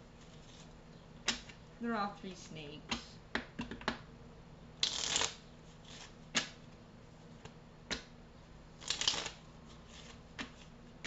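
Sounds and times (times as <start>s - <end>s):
cards riffling: 4.8s - 6.6s, 8.8s - 10.7s.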